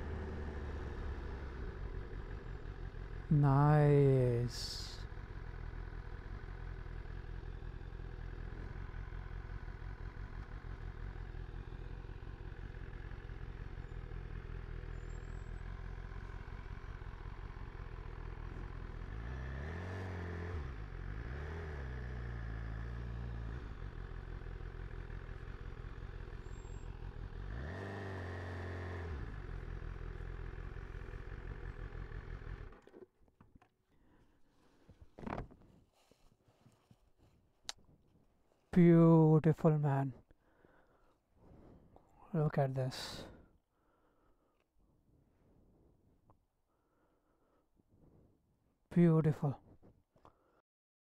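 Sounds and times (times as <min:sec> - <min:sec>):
motorcycle engine running: 0:00.0 - 0:32.9.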